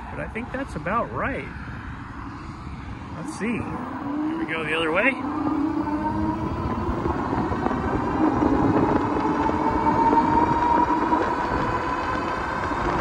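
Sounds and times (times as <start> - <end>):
electric hub motor whining: 0.0 - 13.0
wind rush on microphone: 0.0 - 13.0.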